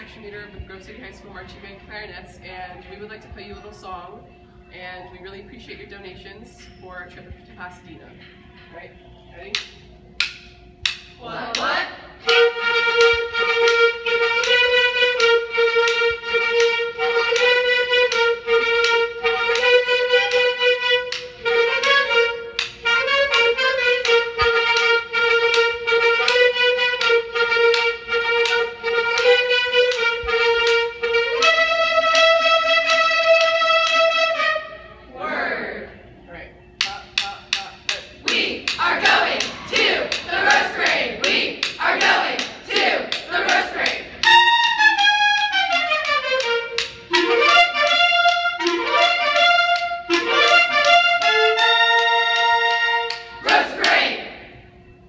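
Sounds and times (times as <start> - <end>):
clarinets playing melody: 8.4 - 55.0
rhythmic clapping: 9.4 - 34.6, 36.8 - 54.5
people shouting: 11.2 - 12.1, 36.9 - 44.0, 53.4 - 54.2.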